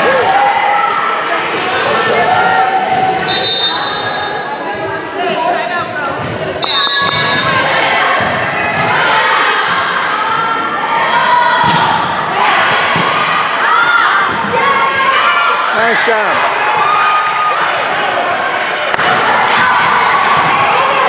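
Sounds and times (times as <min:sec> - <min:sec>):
crowd talking in echoing hall: 0:00.0 - 0:21.0.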